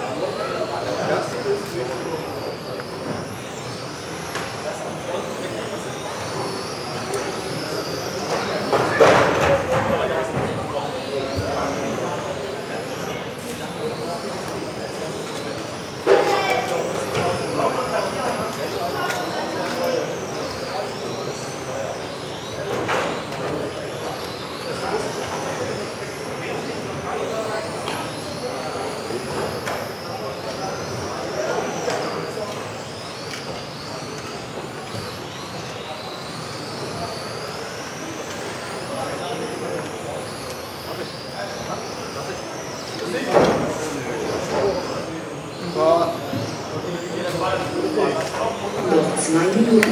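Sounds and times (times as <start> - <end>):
electric motors whining: 0.0 - 49.9.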